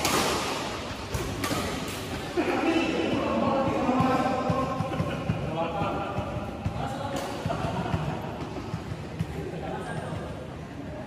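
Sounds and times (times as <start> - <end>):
people talking and calling out: 2.2 - 11.0.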